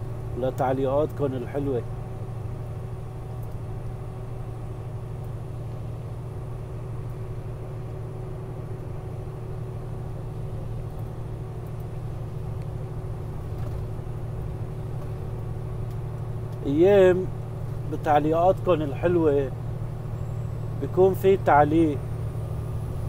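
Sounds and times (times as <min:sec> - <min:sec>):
vehicle engine and road drone: 0:00.0 - 0:23.0.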